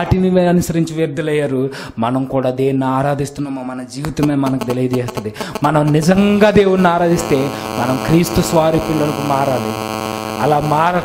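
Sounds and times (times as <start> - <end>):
man speaking into a microphone: 0.0 - 9.8, 10.4 - 11.0
steady electrical hum: 5.6 - 11.0.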